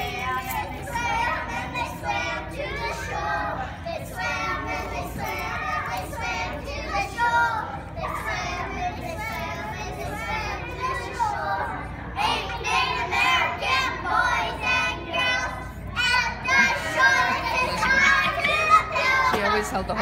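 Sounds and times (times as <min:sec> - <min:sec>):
children singing together: 0:00.0 - 0:19.5.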